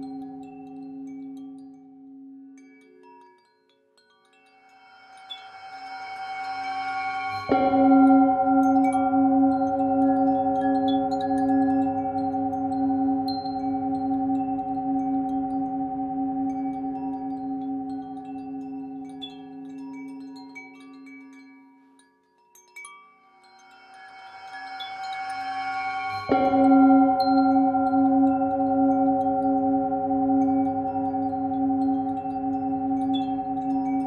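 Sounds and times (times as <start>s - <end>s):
wind chime tinkles: 0.0s - 34.0s
singing bowl ringing: 4.5s - 21.4s, 23.1s - 34.0s.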